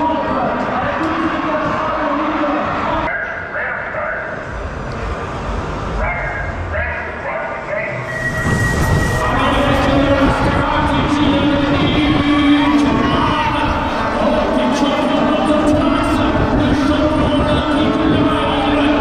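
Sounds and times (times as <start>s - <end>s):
voice over loudspeakers: 0.0s - 4.5s, 5.9s - 8.1s, 9.2s - 19.0s
crowd cheering: 8.1s - 19.0s.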